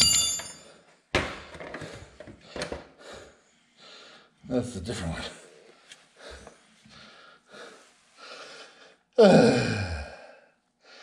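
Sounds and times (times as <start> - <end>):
man breathing softly: 1.8 - 4.4, 5.4 - 9.1.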